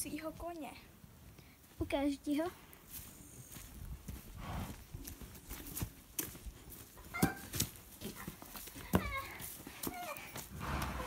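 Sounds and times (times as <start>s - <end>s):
person squealing like a horse: 7.1s - 7.5s, 8.9s - 11.0s.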